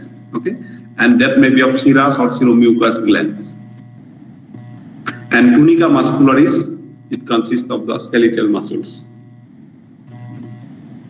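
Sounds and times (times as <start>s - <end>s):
faint steady hum: 0.0s - 11.0s
soft machine whir: 0.0s - 11.0s.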